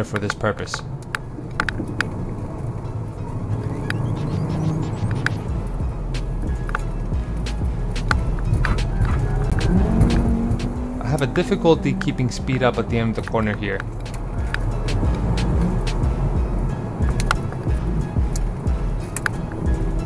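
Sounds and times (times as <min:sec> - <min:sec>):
road noise inside car: 0:00.0 - 0:20.0
car engine revving: 0:00.8 - 0:20.0.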